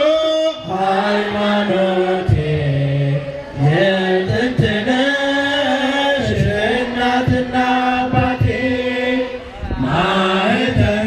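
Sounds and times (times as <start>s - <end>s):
crowd singing a hymn: 0.0s - 11.0s.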